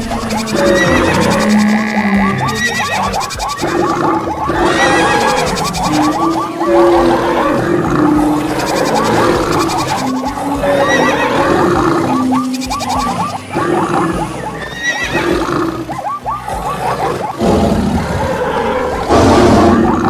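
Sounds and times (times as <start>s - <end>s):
animal calls: 0.0s - 20.0s
music: 0.0s - 20.0s.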